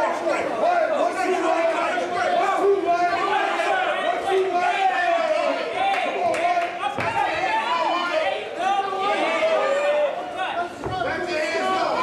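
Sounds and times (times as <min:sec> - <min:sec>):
spectators calling out and chattering: 0:00.0 - 0:12.0.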